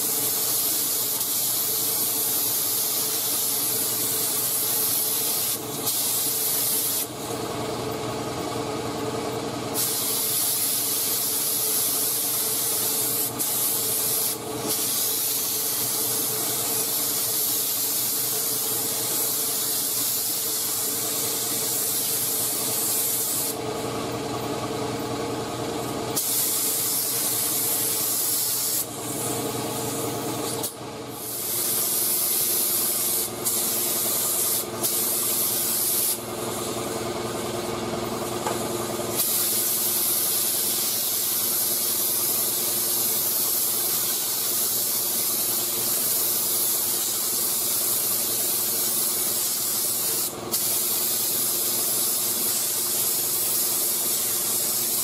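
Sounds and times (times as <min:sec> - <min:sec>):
paint spray gun hissing: 0:00.0 - 0:07.2, 0:09.8 - 0:23.6, 0:26.1 - 0:36.8, 0:38.4 - 0:55.0.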